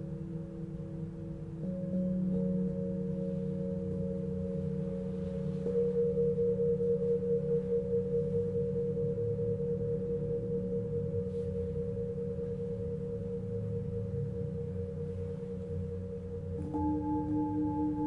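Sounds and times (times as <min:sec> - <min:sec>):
bowl struck: 0:00.0 - 0:18.0
singing bowls ringing: 0:00.0 - 0:18.0.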